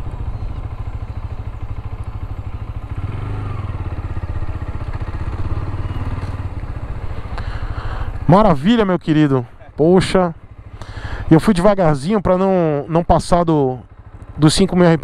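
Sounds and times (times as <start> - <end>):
motorcycle engine at low revs: 0.0 - 15.0.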